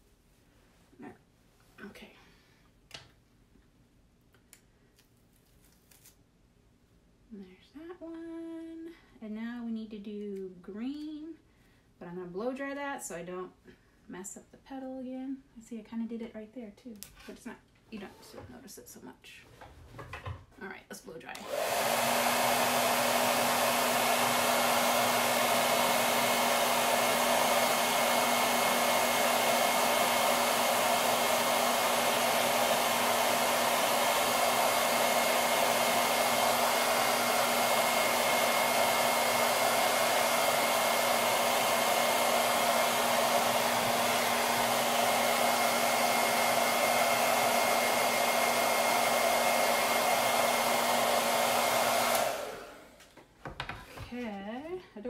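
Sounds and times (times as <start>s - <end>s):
hair dryer running: 21.3s - 53.2s.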